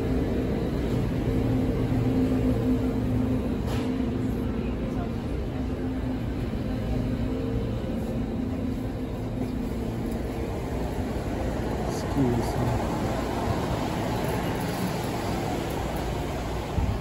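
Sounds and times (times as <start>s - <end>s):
low mechanical hum: 0.0s - 17.0s.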